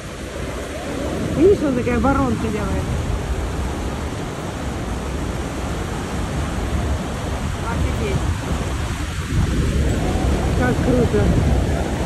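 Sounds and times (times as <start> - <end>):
waterfall rushing with low rumble: 0.0 - 12.0.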